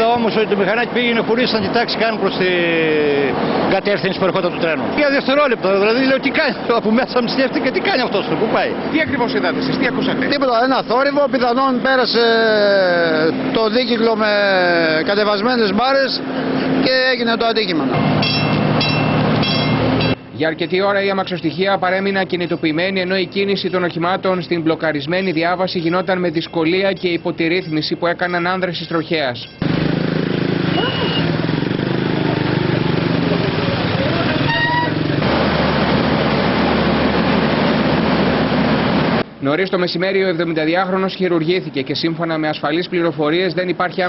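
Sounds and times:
train rail and engine noise: 0.0 - 20.4, 29.6 - 39.4
passing traffic rumble: 0.0 - 44.0
high-pitched pulsing tone: 18.1 - 20.2
vehicle horn toot: 18.2 - 20.2, 30.7 - 31.4, 34.4 - 35.1.

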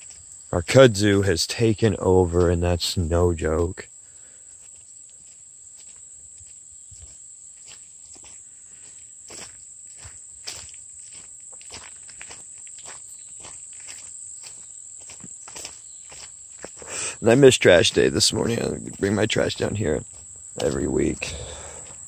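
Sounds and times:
footsteps on grass and dirt: 0.0 - 22.0
high-pitched insect drone: 0.0 - 22.0.

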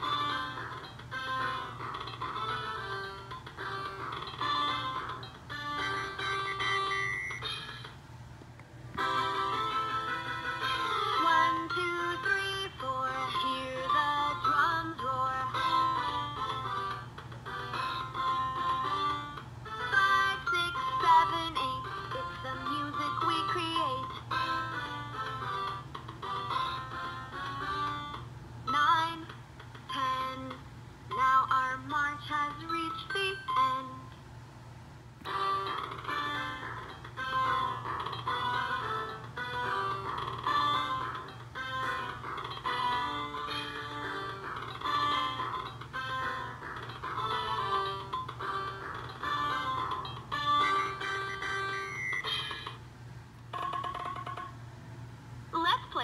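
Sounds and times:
electronic children's tune from toy speaker: 0.0 - 8.0, 9.0 - 29.3, 29.9 - 34.1, 35.3 - 52.8.

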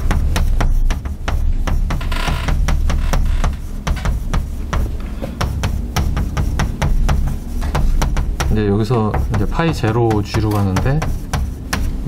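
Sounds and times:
chalk tapping on a blackboard: 0.0 - 12.0
steady low rumble: 0.0 - 12.0.

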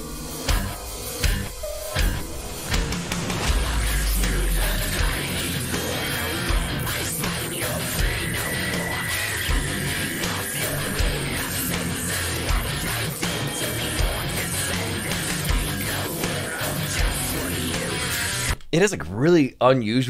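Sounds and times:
heavy metal song: 0.0 - 18.6
heavy drum hits: 0.5 - 7.4.

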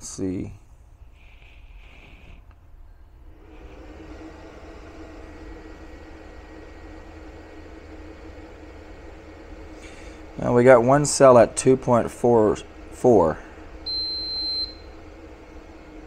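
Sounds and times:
cooling fan and hum: 0.0 - 16.0
short high beep: 13.9 - 14.9.

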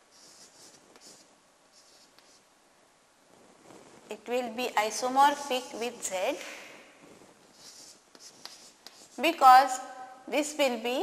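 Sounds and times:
chalk scratching on blackboard: 0.1 - 2.4, 5.3 - 6.2, 7.5 - 9.4.

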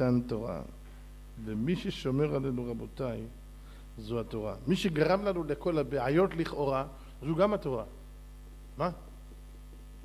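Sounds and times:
low electrical mains hum: 0.0 - 10.0
person speaking: 1.4 - 3.4.

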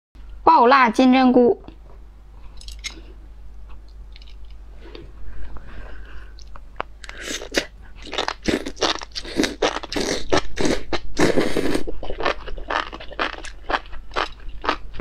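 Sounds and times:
chewing mushrooms: 6.4 - 15.0.

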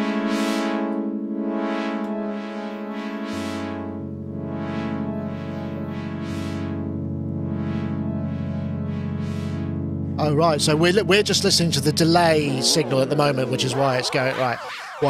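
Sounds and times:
synthesizer chords with delay: 0.0 - 15.0.

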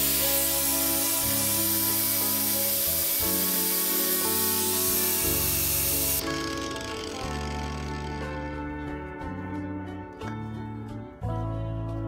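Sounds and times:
angle grinder sanding wood: 0.0 - 8.6
background music: 0.0 - 12.0.

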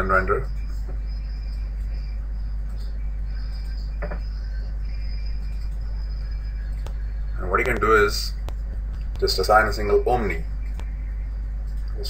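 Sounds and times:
faint high-pitched whine: 0.0 - 12.0
low electrical hum and hiss: 0.0 - 12.0.

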